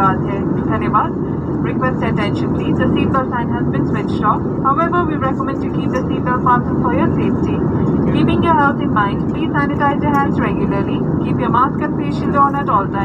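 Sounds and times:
jet airliner cabin drone: 0:00.0 - 0:13.0.

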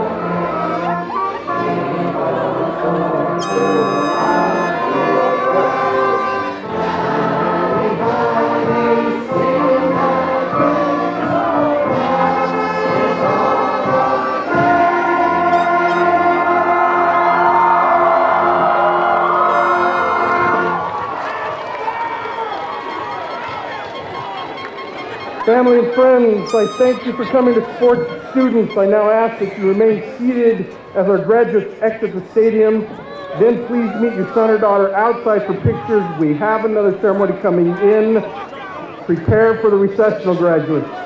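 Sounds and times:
band and orchestra with brass: 0:00.0 - 0:21.1, 0:22.6 - 0:31.0
crowd singing along: 0:00.0 - 0:21.2, 0:22.9 - 0:39.6
crowd noise: 0:00.0 - 0:41.0.

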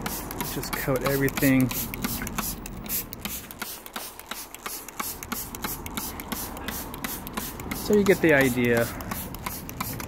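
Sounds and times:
spray bottle spritzing: 0:00.0 - 0:10.0.

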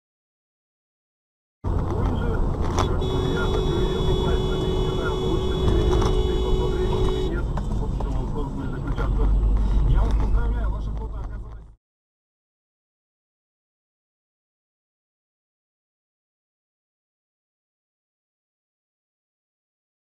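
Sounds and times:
vehicle and road rumble: 0:01.6 - 0:11.8.

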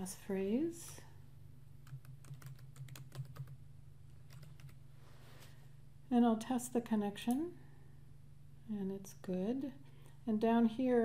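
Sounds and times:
steady low hum: 0:00.0 - 0:11.0
computer keyboard typing: 0:01.8 - 0:03.6, 0:04.2 - 0:04.8.

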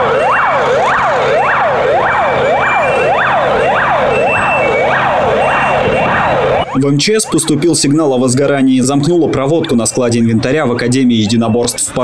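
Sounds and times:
truck engine running: 0:00.0 - 0:11.0
fire engine siren wailing: 0:00.0 - 0:12.0.

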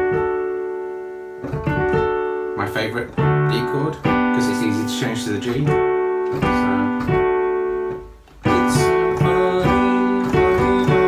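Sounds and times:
rock and roll piano chords: 0:00.0 - 0:11.0.

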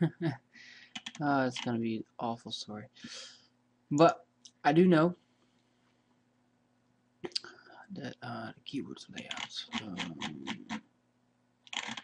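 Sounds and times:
person murmuring: 0:07.3 - 0:10.8
mouse scroll wheel clicks: 0:09.2 - 0:10.8, 0:11.7 - 0:12.0.

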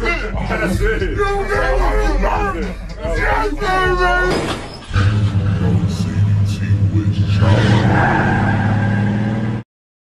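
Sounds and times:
slowed car engine drone: 0:04.9 - 0:09.6.

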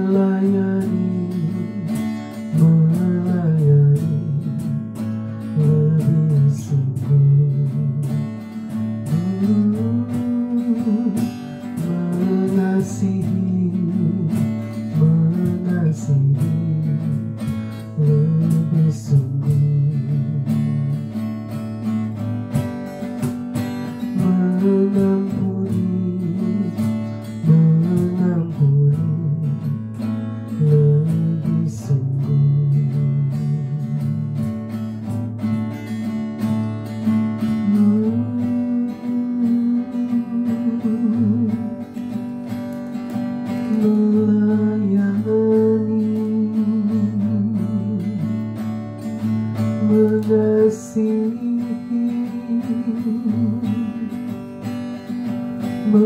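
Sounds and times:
acoustic guitar strumming: 0:00.0 - 0:56.0
woman singing into a microphone: 0:49.8 - 0:53.8.

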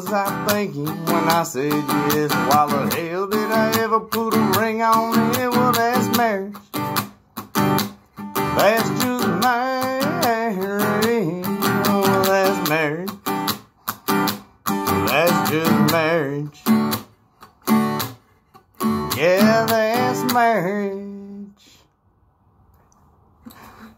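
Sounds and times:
man singing long notes: 0:00.0 - 0:06.6, 0:08.5 - 0:13.2, 0:14.9 - 0:16.7, 0:19.0 - 0:21.8
acoustic guitar strumming: 0:00.0 - 0:21.4.

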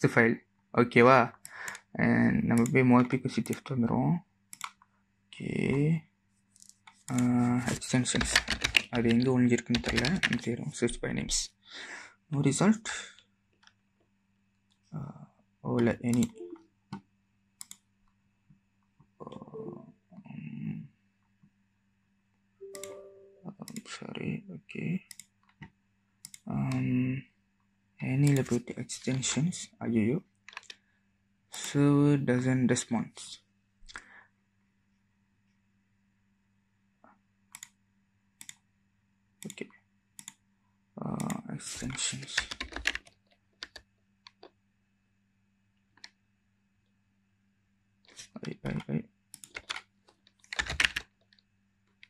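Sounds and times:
computer keyboard typing: 0:07.1 - 0:10.4, 0:41.2 - 0:44.5, 0:48.4 - 0:49.8, 0:50.4 - 0:51.1.

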